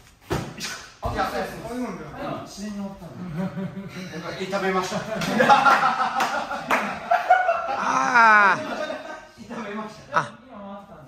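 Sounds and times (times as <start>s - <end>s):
group of people laughing: 3.2s - 10.4s
hand claps: 5.2s - 7.0s.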